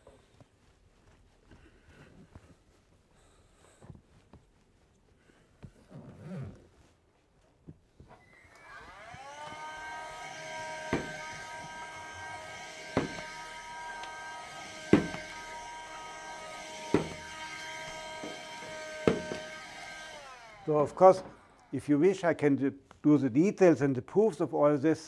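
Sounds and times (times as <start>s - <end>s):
electric whine: 8.1s - 22.1s.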